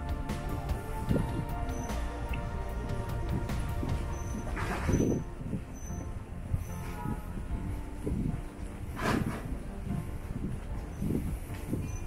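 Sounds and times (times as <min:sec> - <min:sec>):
city street traffic rumble: 0:00.0 - 0:12.0
low thuds: 0:00.0 - 0:12.0.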